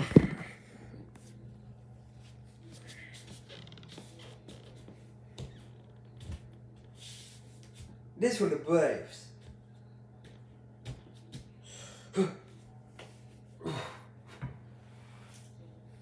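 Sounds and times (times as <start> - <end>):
low steady hum: 0.0 - 16.0.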